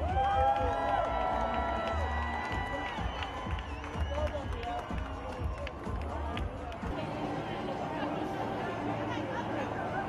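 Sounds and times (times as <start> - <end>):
music with deep bass beat: 0.0 - 7.0
crowd voices and calls: 0.0 - 10.0.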